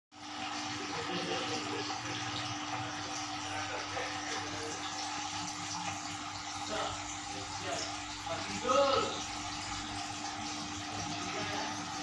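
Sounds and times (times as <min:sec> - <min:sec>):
water circulating and bubbling: 0:00.1 - 0:12.0.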